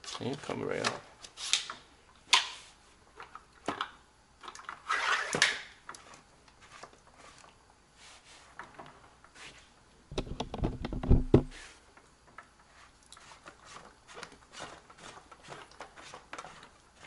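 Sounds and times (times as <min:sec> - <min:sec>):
plastic knocks and clicks: 0:10.1 - 0:11.5.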